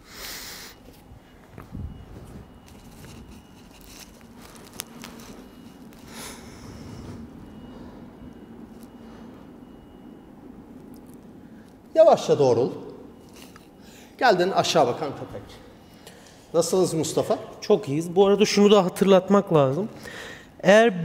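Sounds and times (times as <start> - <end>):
rustling on yoga mats: 0.8 - 9.6
soft breathing: 5.0 - 9.7, 20.0 - 20.6.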